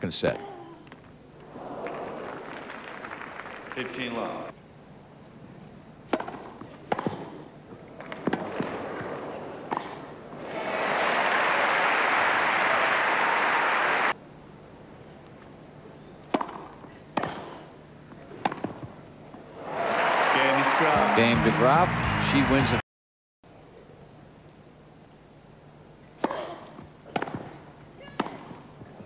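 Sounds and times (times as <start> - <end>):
crowd applause: 1.4 - 4.5, 8.1 - 14.2, 19.6 - 22.8
tennis racket hitting ball: 6.1 - 10.5, 16.3 - 17.6, 18.3 - 18.9, 26.2 - 28.9.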